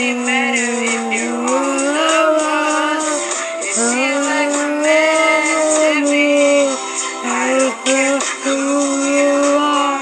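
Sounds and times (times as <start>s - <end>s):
man singing slow melody: 0.0s - 10.0s.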